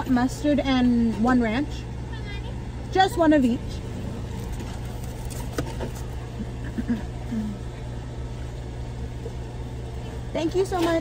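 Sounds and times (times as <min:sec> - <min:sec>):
car engine idling: 0:01.7 - 0:10.1.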